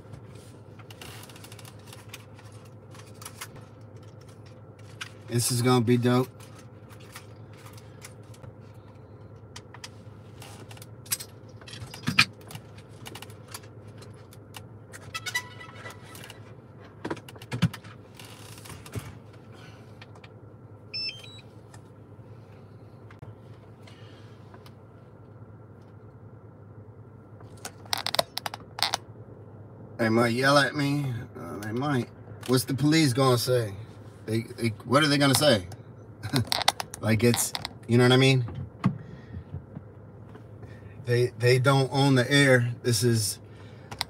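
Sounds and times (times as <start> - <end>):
car engine idling: 0.0 - 44.0.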